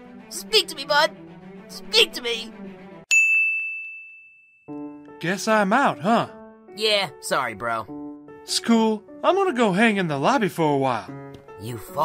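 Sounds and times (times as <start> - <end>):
cartoon bell ding: 3.1 - 5.0.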